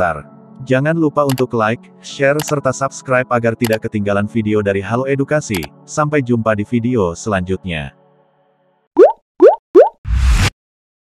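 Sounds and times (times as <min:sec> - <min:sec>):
rising bloop pop effects: 0:09.0 - 0:10.0.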